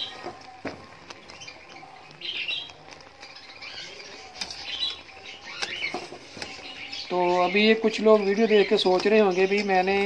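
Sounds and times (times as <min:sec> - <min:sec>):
syrup boiling and popping: 0:00.0 - 0:10.0.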